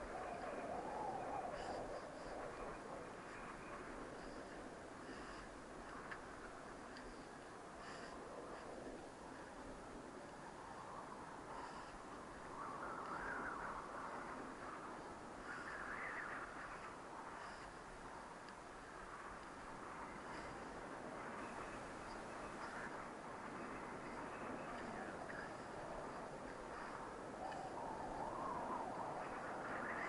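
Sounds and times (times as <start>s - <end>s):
wind on microphone: 0.0s - 30.0s.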